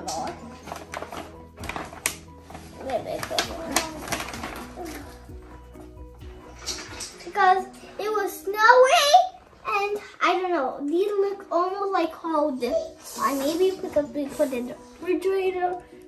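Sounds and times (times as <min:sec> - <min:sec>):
plastic bag rustling: 0:00.0 - 0:07.4
soft background music: 0:00.0 - 0:16.0
child's voice: 0:02.8 - 0:05.2, 0:07.2 - 0:15.9.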